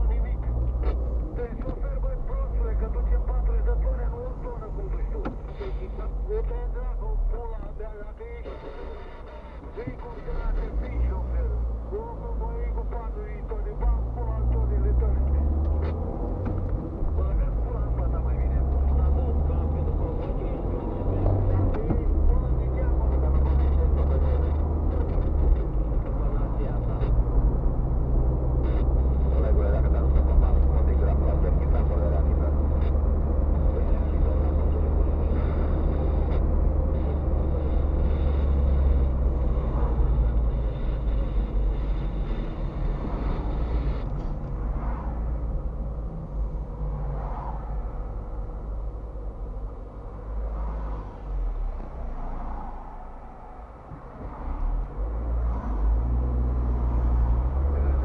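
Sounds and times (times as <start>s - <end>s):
car engine and tyres droning: 0.0s - 58.0s.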